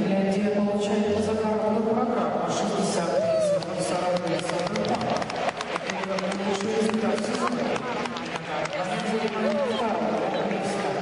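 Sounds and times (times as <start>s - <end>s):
audience applauding and cheering: 3.1s - 11.0s
close hand claps: 3.5s - 9.8s.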